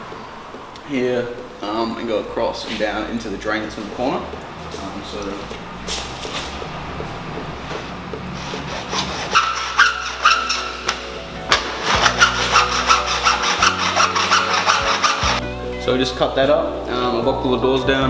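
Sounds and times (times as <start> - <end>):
hand saw cutting plastic pipe: 8.3 - 15.4.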